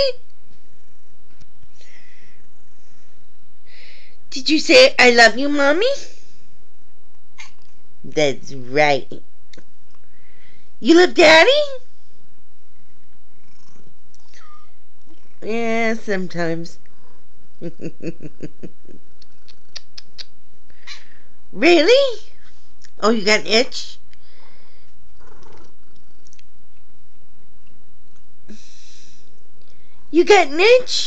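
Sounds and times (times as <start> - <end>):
cat purring: 12.7 - 16.1, 16.7 - 20.2, 24.4 - 26.4.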